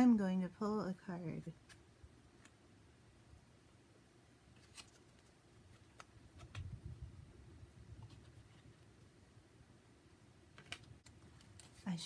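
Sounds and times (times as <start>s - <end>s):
low rumble of hands handling cards: 1.5s - 9.4s, 10.3s - 12.0s.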